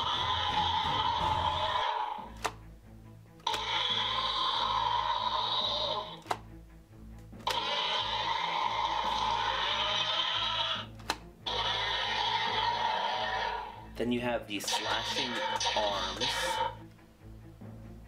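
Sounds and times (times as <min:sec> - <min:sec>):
toy electronic roars: 0:00.0 - 0:02.4, 0:03.4 - 0:06.3, 0:07.4 - 0:13.9, 0:14.7 - 0:16.8.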